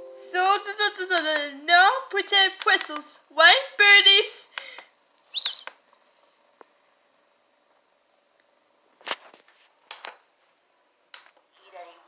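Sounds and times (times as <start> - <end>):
faint high-pitched television tone: 10.6 - 12.0.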